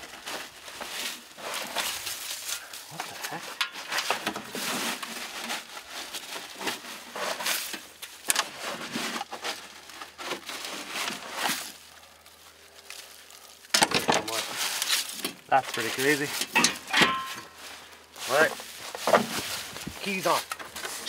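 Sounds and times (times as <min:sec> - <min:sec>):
dry leaves rustling: 0:00.0 - 0:21.0.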